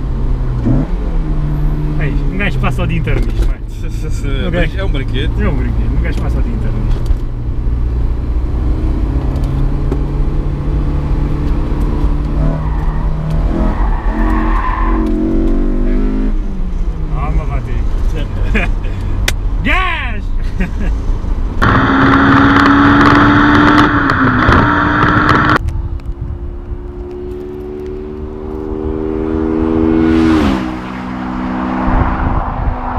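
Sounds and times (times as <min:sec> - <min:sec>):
car engine revving in cabin: 0:00.0 - 0:19.4, 0:21.5 - 0:25.6, 0:26.4 - 0:32.9
car passing by: 0:29.1 - 0:32.9.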